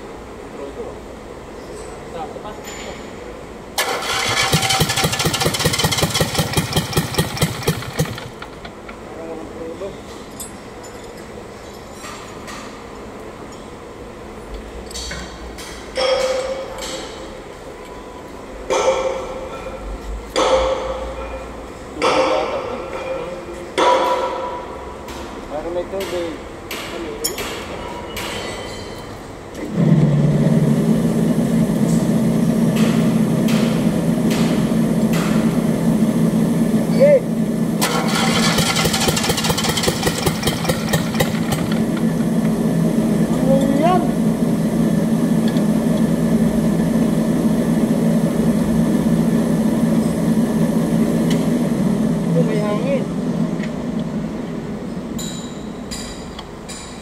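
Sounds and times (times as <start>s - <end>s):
diesel engine running: 3.8s - 8.8s, 29.6s - 54.7s.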